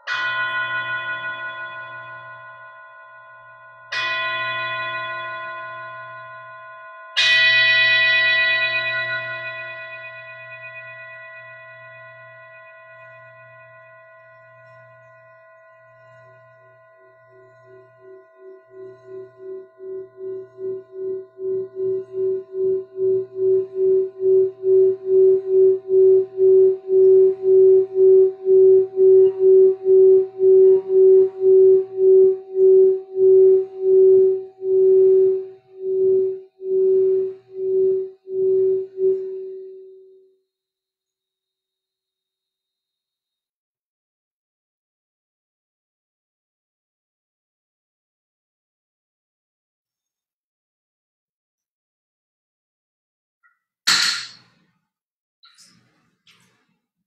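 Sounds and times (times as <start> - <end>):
struck singing bowl ringing: 0.0 - 40.2.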